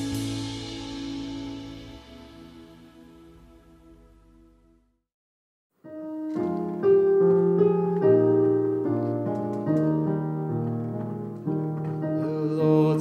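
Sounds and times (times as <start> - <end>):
piano playing slow hymn chords: 0.0 - 4.7, 5.8 - 13.0
man singing: 12.0 - 13.0.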